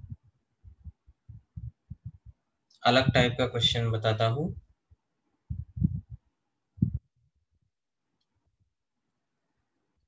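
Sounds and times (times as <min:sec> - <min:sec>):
faint low thumps: 0:00.0 - 0:03.4, 0:05.5 - 0:07.1.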